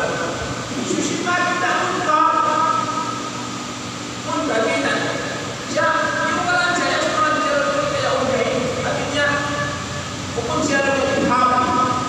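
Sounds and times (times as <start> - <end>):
man lecturing over loudspeaker: 0.0 - 3.1, 4.2 - 12.0
steady low hum: 0.0 - 12.0.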